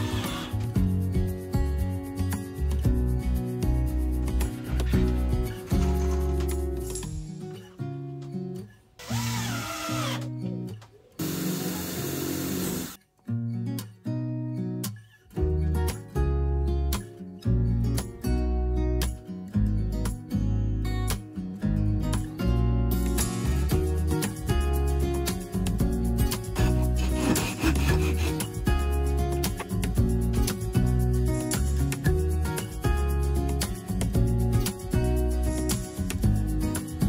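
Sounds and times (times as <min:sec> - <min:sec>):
cordless drill drilling into wood: 0:00.0 - 0:00.6, 0:09.0 - 0:10.3, 0:11.2 - 0:13.0, 0:26.6 - 0:28.5
acoustic guitar music: 0:00.0 - 0:37.0
blade rasping on wooden dowel: 0:26.5 - 0:28.8.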